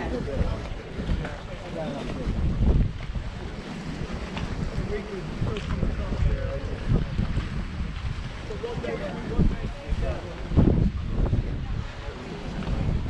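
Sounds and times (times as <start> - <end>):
faint voices talking: 0.0 - 13.0
wind buffeting microphone: 0.0 - 13.0.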